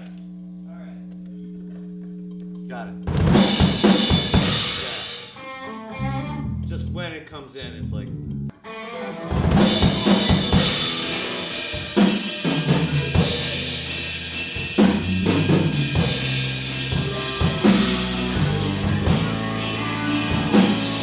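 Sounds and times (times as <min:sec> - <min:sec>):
band playing a steady groove: 0:00.0 - 0:21.0.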